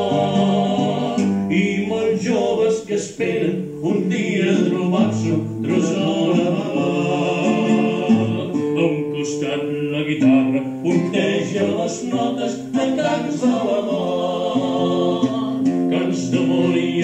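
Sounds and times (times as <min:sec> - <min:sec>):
acoustic guitar strummed: 0:00.0 - 0:17.0
man singing long notes: 0:00.0 - 0:17.0.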